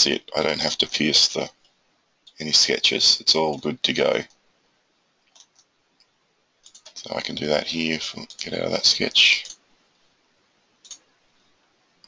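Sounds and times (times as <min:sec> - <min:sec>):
person speaking: 0:00.0 - 0:01.6, 0:02.3 - 0:04.4, 0:06.7 - 0:09.6
faint computer mouse clicks: 0:05.3 - 0:07.0.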